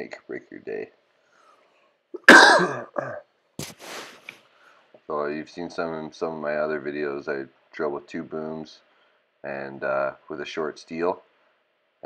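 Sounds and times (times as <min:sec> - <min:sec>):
noisy breath: 0:01.2 - 0:02.0, 0:03.6 - 0:05.0, 0:08.8 - 0:09.4
man coughing: 0:02.2 - 0:03.2.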